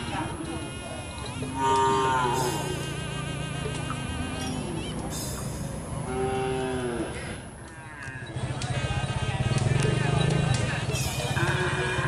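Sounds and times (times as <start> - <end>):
bull lowing: 1.5 - 3.1.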